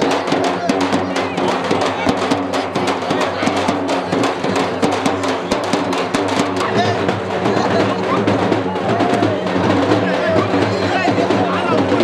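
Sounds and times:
crowd voices: 0.0 - 12.0
festive music with fast drumming: 0.0 - 12.0.

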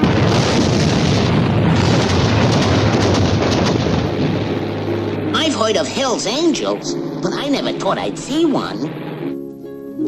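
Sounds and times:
cartoon explosion rumbling blast: 0.0 - 7.7.

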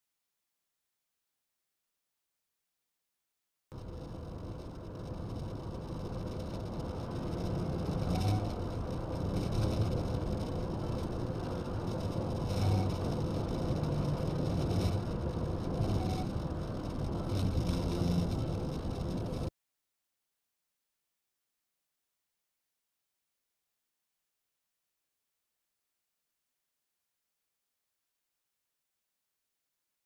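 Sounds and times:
car engine and road noise: 3.8 - 19.5.

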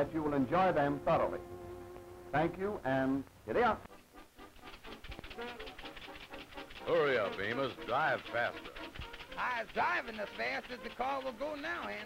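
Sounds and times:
cartoon car engine chugging: 4.2 - 12.0.

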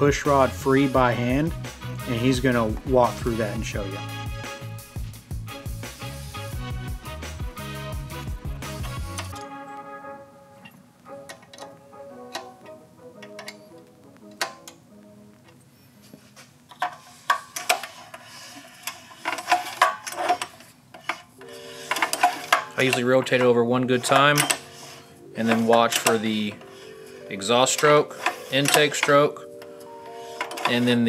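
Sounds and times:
background music: 0.0 - 31.0.

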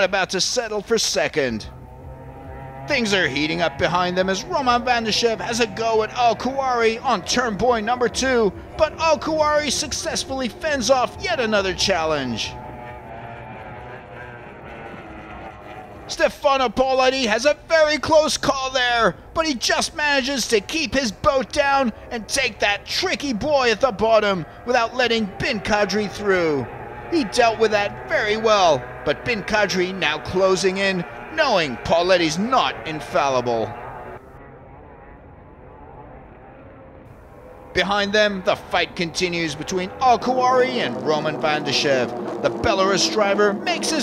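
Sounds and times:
outboard boat engine at full throttle: 2.7 - 16.7, 20.8 - 33.4.

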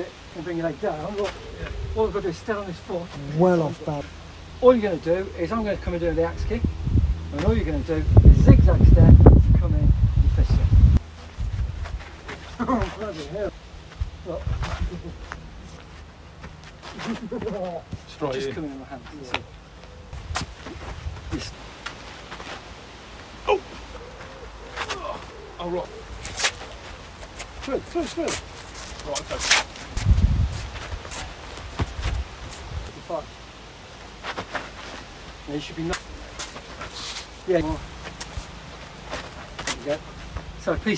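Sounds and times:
wind buffeting microphone: 1.4 - 2.4, 5.6 - 12.2, 13.9 - 15.2, 20.0 - 21.6, 29.2 - 32.9
feet scuffing on dry ground: 11.0 - 18.2, 19.0 - 22.8, 26.1 - 32.8, 36.0 - 37.4
bodies making contact: 11.0 - 32.9, 33.9 - 40.6.

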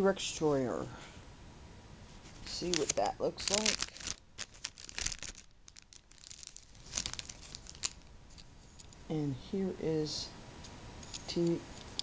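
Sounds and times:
plastic packaging crinkling: 2.2 - 9.0.

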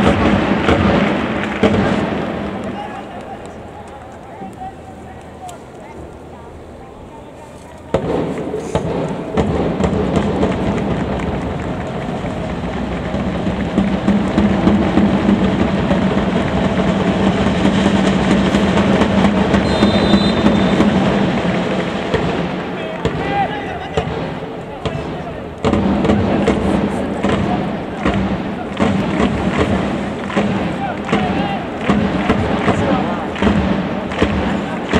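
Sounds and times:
sharp claps: 0.0 - 5.6, 7.9 - 34.9
stadium crowd noise: 0.0 - 34.9.

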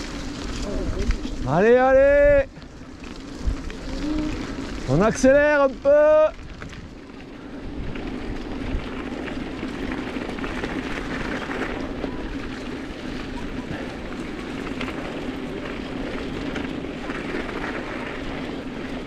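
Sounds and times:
bike tyres on gravel: 0.0 - 19.0.

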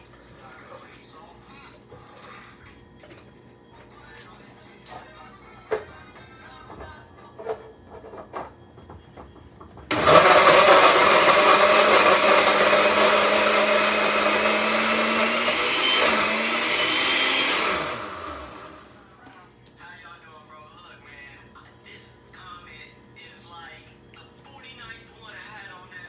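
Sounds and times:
blender motor running: 9.9 - 19.2.

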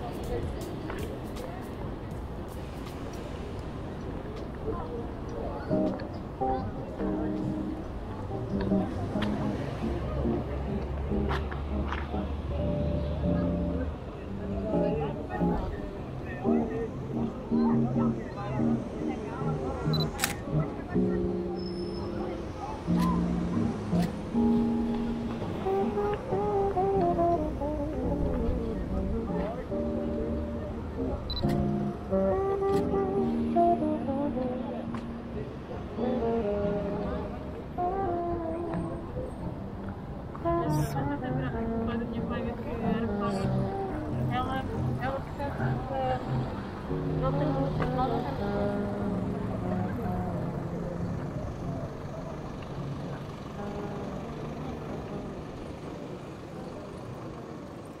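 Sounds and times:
road traffic hum: 0.0 - 58.0.

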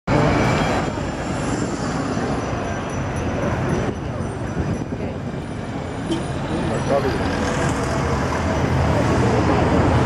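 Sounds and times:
bus engine rumble: 0.1 - 10.0
street traffic: 0.1 - 10.0.

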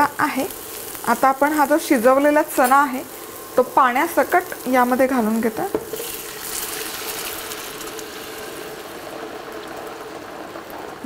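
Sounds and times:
liquid pouring into a frying pan: 5.8 - 11.0.

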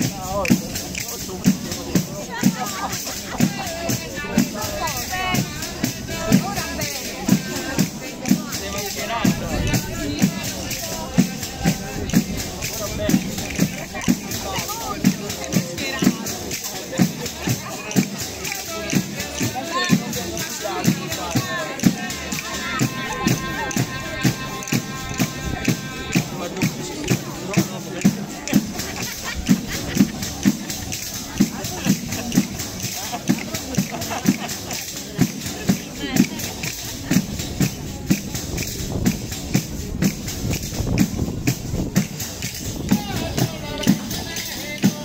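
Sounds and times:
frame drum with jingles: 0.0 - 45.0
person singing: 20.9 - 27.6.

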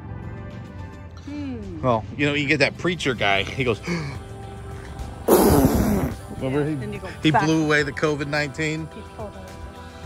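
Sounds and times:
person blowing into microphone: 5.3 - 6.3.

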